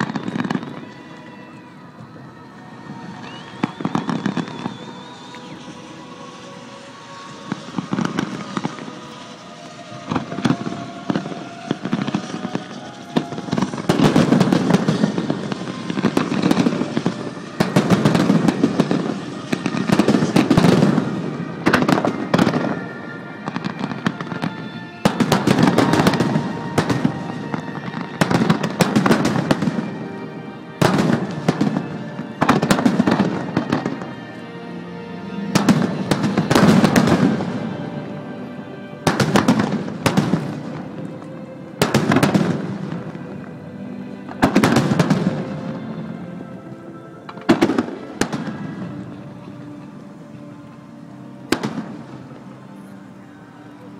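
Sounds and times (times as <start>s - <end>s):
fireworks bursting with crackle: 0.0s - 53.8s
music playing: 0.0s - 53.9s.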